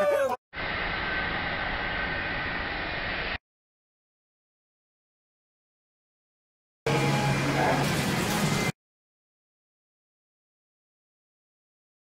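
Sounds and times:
outdoor hiss: 0.6 - 3.4.

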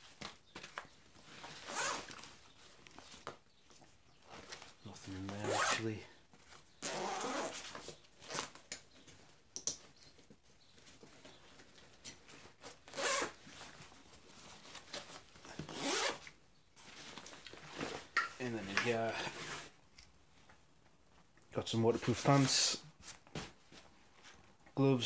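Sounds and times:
backpack zipper pulled open: 1.6 - 2.1, 5.4 - 5.8, 6.8 - 7.6, 12.9 - 13.4, 15.6 - 16.3.

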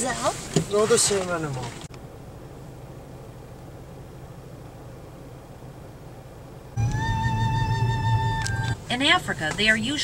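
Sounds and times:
low rumble inside a car: 0.0 - 10.0
held flute-like music note: 6.8 - 8.8.

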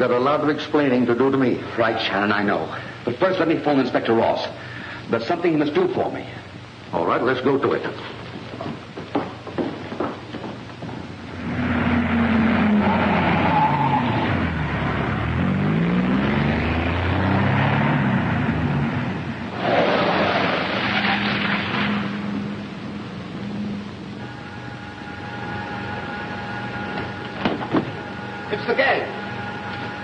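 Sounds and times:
steady hum: 0.0 - 30.0
car engine revving: 11.3 - 22.7.

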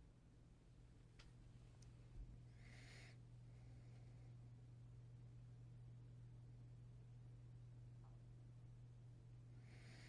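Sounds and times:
soft hiss: 0.0 - 10.0
steady low hum: 0.0 - 10.0.

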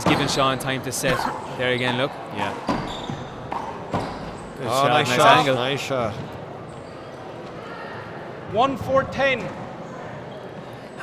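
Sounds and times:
low background noise of sports hall: 0.0 - 11.0.

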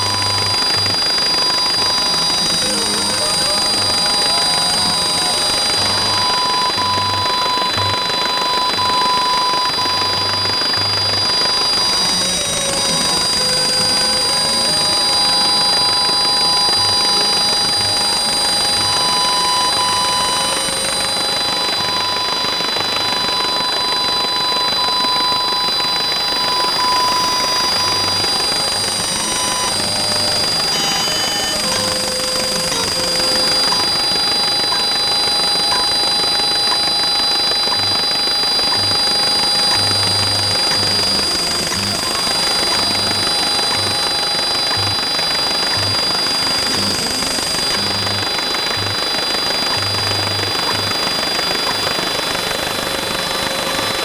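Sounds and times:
short beeps: 0.0 - 52.1
high-pitched steady tones: 0.0 - 54.0
lower tone switching on and off: 0.0 - 54.0
steady hiss: 0.0 - 54.0.

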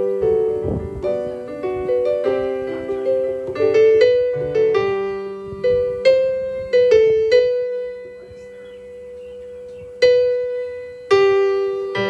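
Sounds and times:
electric keyboard sustained chord: 0.0 - 12.0.

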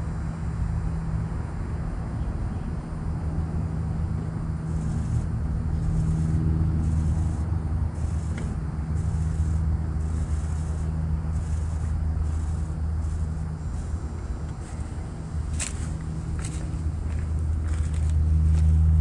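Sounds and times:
compressor humming: 0.0 - 19.0
fans rushing: 4.5 - 19.0.

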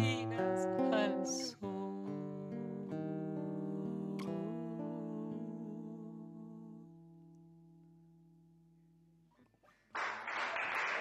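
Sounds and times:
acoustic guitar chords: 0.0 - 9.5.

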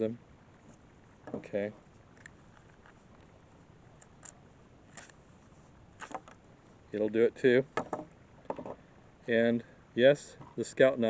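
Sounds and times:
knife cutting into stick: 4.2 - 5.2.

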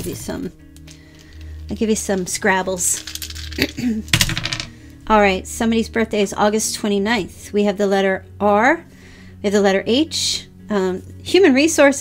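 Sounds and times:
game tiles clattering on table: 3.0 - 4.7.

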